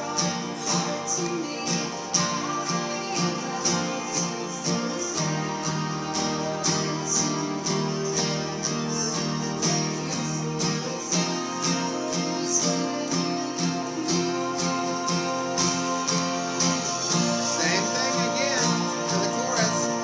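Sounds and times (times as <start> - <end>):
acoustic guitar strumming chords: 0.0 - 20.0.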